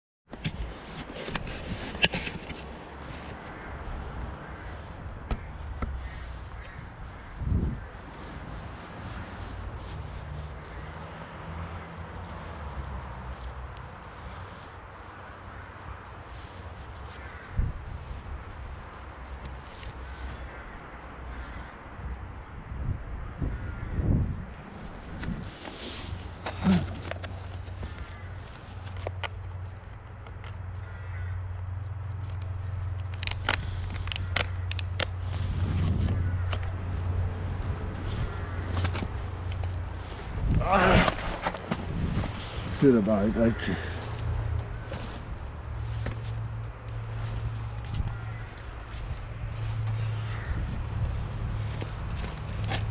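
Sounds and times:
footsteps on dry leaves: 0:05.4 - 0:20.7, 0:32.0 - 0:52.9
sharp clicks: 0:32.3 - 0:35.2.

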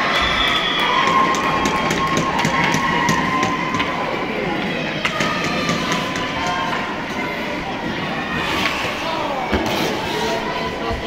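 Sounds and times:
spectators shouting and cheering: 0:00.0 - 0:11.0
hockey sticks and puck clacking: 0:00.2 - 0:06.9.

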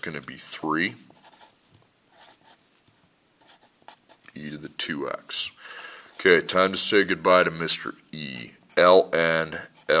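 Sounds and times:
pencil scratching on paper: 0:01.0 - 0:04.2.

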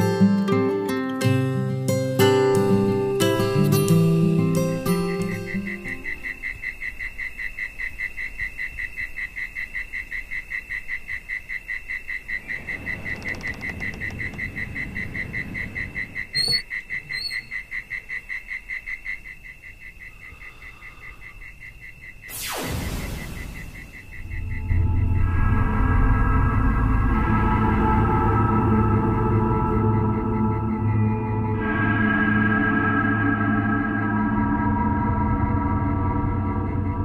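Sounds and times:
guitar tune: 0:00.0 - 0:06.0
crickets chirping: 0:00.0 - 0:37.0.

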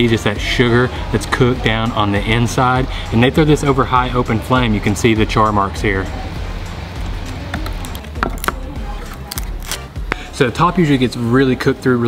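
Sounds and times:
background music: 0:00.0 - 0:12.0
bamboo cracking and splintering: 0:07.6 - 0:10.2.

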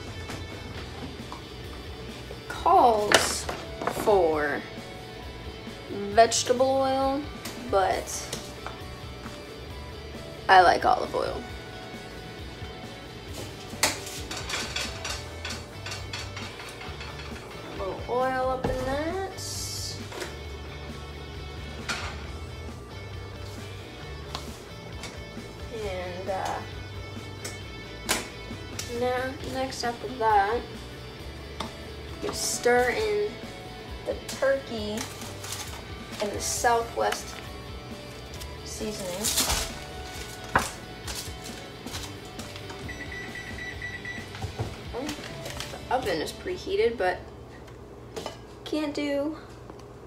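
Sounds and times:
background music with bass line: 0:00.0 - 0:46.0
oven high beep: 0:42.8 - 0:44.4.

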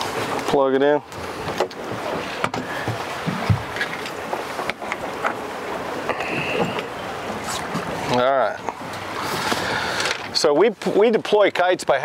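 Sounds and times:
sea wash: 0:00.0 - 0:12.0
wind: 0:00.0 - 0:12.0.

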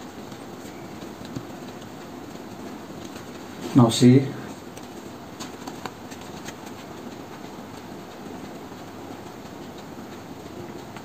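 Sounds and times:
stiff paper rustling: 0:04.5 - 0:07.8.

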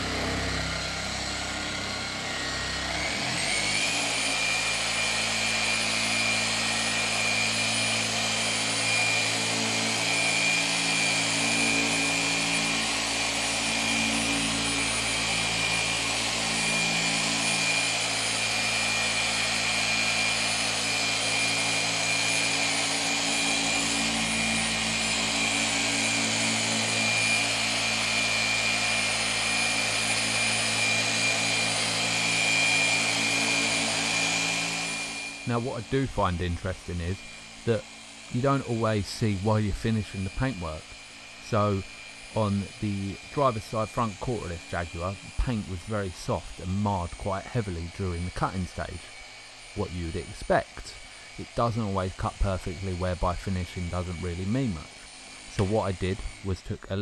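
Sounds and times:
machine polisher motor whine: 0:00.0 - 0:57.0.

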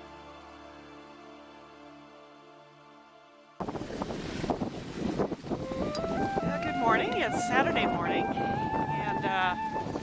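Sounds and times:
wind on microphone: 0:03.6 - 0:10.0
faint music: 0:05.6 - 0:10.0.

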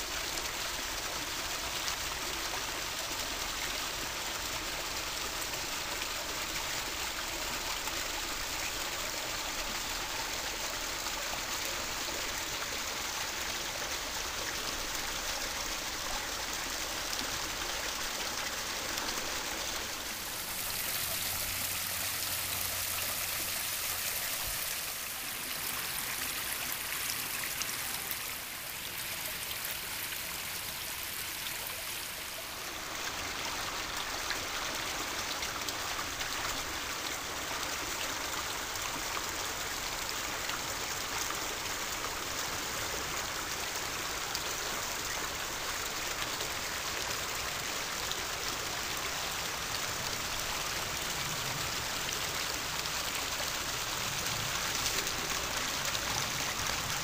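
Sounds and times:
waterfall splashing into pond: 0:00.0 - 0:57.0.

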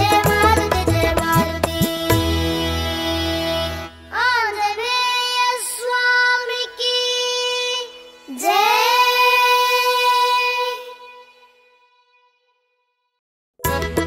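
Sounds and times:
instrumental accompaniment with tabla: 0:00.0 - 0:04.7, 0:13.6 - 0:14.0
children singing together: 0:00.0 - 0:11.5.

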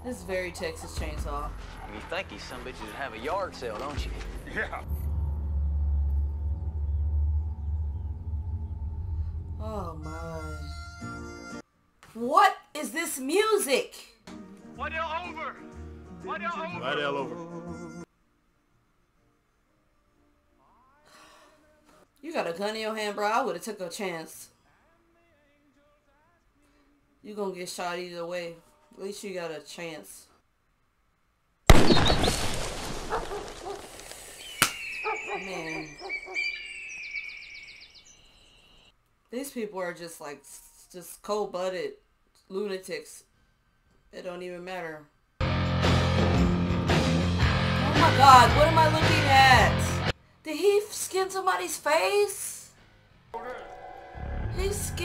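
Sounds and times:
deep rumbling drone: 0:04.1 - 0:10.3, 0:53.7 - 0:55.0
loud gunshot with echo: 0:31.7 - 0:32.6.

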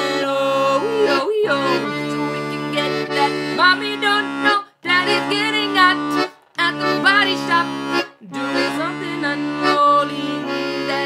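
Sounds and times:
accordion playing sustained chords: 0:00.0 - 0:11.0
person singing gliding melody: 0:00.0 - 0:11.0.

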